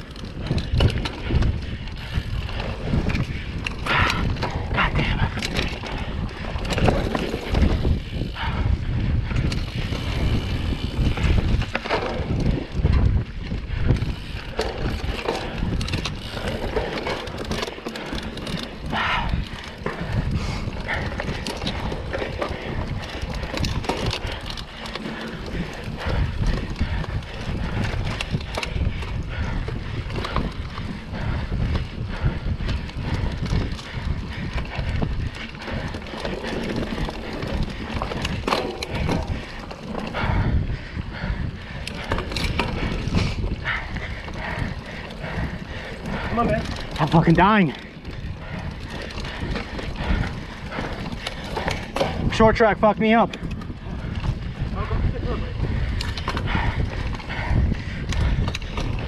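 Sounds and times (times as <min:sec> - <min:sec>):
bike chain and frame rattling: 0:00.0 - 0:59.0
bike tyres rolling on dirt: 0:00.0 - 0:59.0
wind on microphone: 0:00.0 - 0:59.0.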